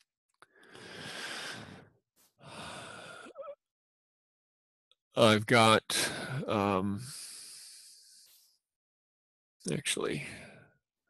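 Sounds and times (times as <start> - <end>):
man breathing close to microphone: 0.4 - 3.4.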